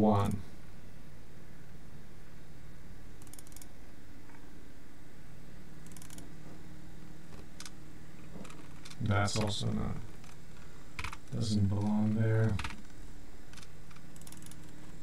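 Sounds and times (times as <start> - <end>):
steady low hum: 0.0 - 15.0
computer mouse clicks: 3.2 - 3.7, 5.8 - 6.3, 12.5 - 12.9, 13.5 - 14.8.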